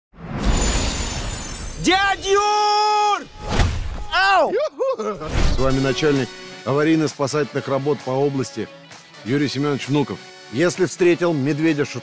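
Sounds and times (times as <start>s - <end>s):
person shouting: 1.9s - 5.0s.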